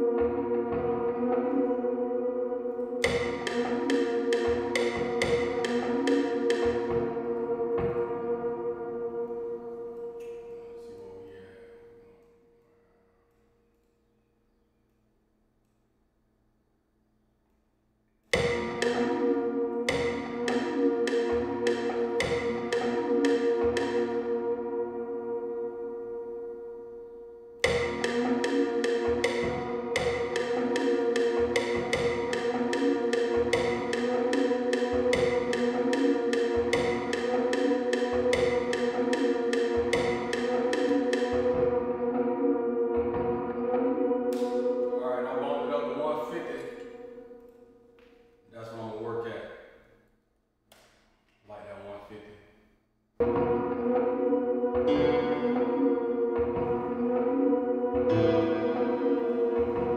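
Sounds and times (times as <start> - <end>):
percussive beat loop: 3.0 - 8.2, 18.4 - 24.3, 27.6 - 42.0, 44.2 - 45.0.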